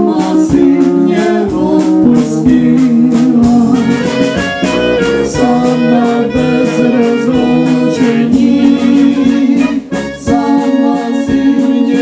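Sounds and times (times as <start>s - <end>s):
woman and man singing: 0.0s - 4.4s, 5.0s - 12.0s
brass band playing: 0.0s - 12.0s.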